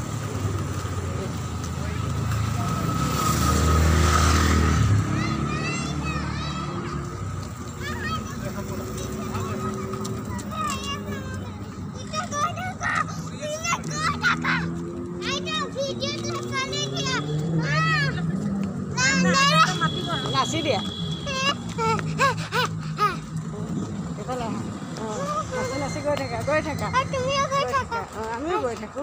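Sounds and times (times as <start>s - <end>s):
vehicle engine hum and tyre noise: 0.0s - 29.0s
young child calling and chattering: 4.8s - 20.4s, 21.0s - 23.5s, 25.1s - 26.0s, 26.8s - 29.0s.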